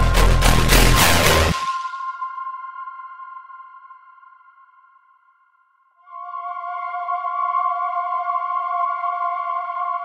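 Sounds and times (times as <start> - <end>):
sustained synthesizer chord: 0.0 - 5.0.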